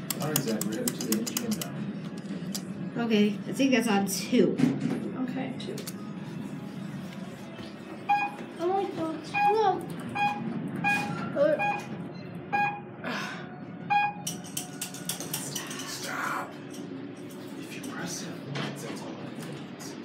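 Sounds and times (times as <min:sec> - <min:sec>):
elevator short beeps: 0:08.0 - 0:08.4, 0:09.3 - 0:13.0, 0:13.8 - 0:14.3.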